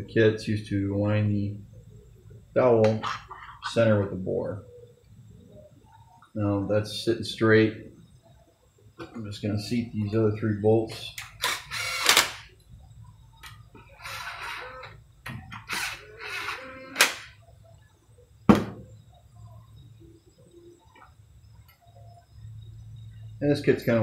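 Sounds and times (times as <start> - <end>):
cordless drill running: 11.4 - 12.2
sharp knocks: 18.5 - 18.9.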